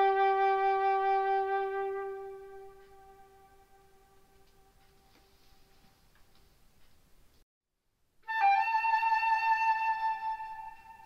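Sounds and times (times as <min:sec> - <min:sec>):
flute playing: 0:00.0 - 0:04.8, 0:08.2 - 0:11.0.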